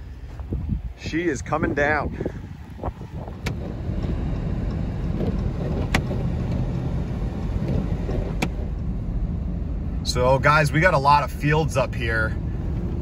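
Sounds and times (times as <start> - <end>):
truck engine and tyres rumbling: 0.0 - 13.0.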